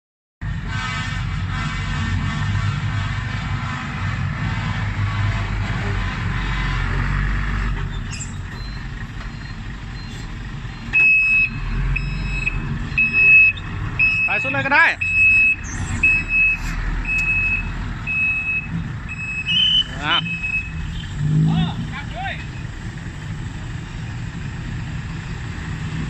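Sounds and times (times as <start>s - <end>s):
diesel truck engine running: 0.4s - 26.0s
reversing alarm beeping: 8.0s - 21.0s.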